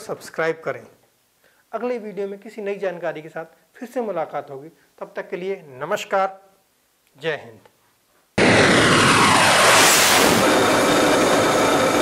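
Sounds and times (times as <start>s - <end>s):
jet aircraft flying past: 8.4s - 12.0s.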